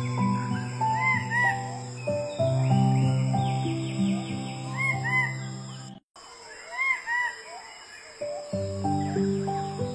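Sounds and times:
soft music with held notes: 0:00.0 - 0:06.0, 0:08.2 - 0:09.9
bird calls: 0:00.0 - 0:09.9.

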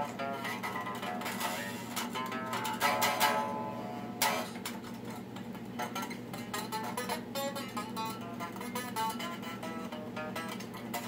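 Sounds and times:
electric guitar chord strummed: 0:00.0 - 0:05.0, 0:05.8 - 0:11.0
steady low hum: 0:00.0 - 0:11.0.

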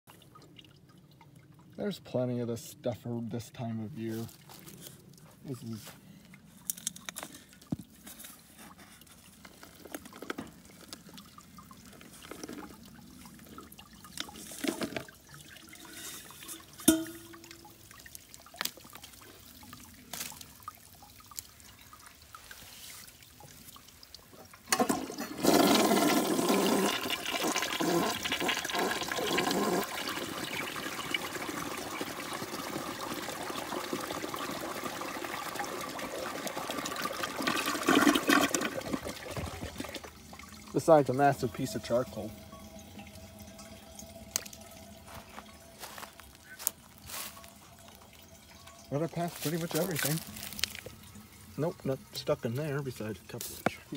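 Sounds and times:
toilet flushing: 0:24.4 - 0:46.0.

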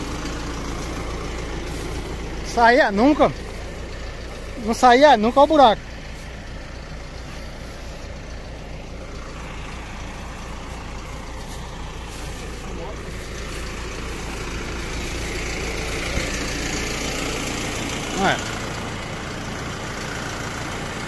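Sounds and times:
diesel engine idling: 0:00.0 - 0:21.0.

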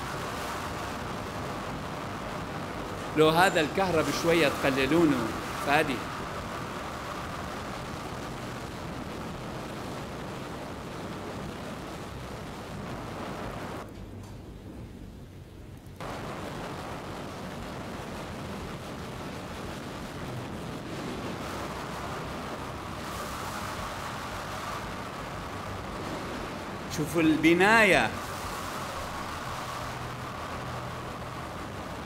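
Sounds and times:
tornado winds roaring over loudspeakers: 0:00.0 - 0:32.0.

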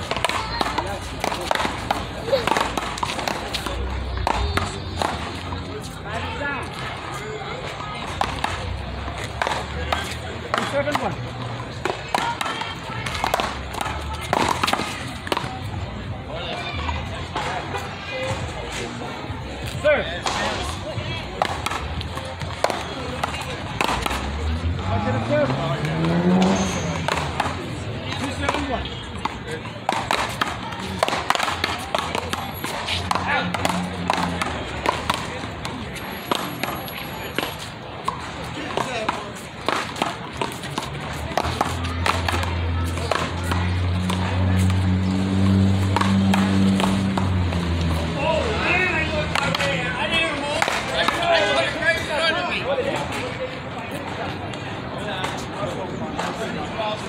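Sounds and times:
ball hitting paddles and wall: 0:00.0 - 0:53.4, 0:54.0 - 0:57.0.

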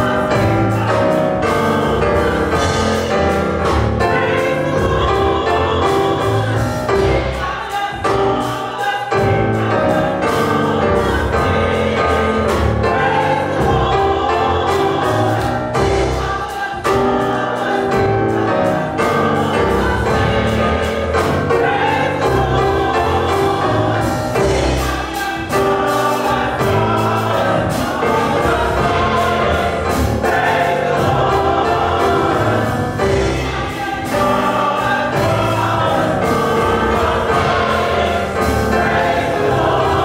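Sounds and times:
church choir singing gospel: 0:00.0 - 0:40.0
instrumental accompaniment with beat: 0:00.0 - 0:40.0.

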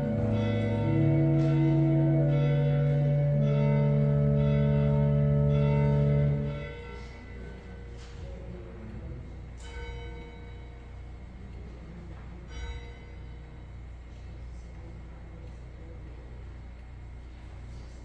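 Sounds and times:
sustained organ chords: 0:00.0 - 0:08.2.

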